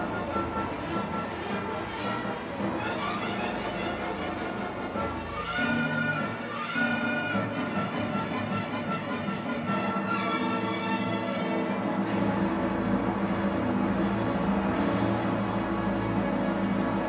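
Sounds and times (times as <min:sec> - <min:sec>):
orchestral string music: 0:00.0 - 0:17.0.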